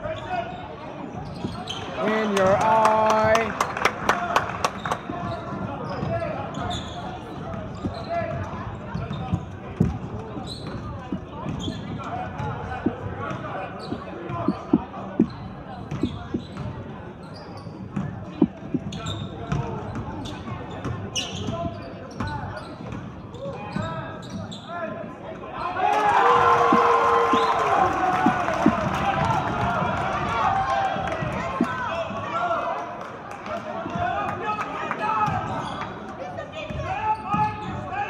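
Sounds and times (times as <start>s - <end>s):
sneaker squeaks: 0.0s - 2.1s, 4.7s - 25.8s, 26.7s - 27.6s, 35.2s - 38.0s
murmur of crowd voices: 0.0s - 38.0s.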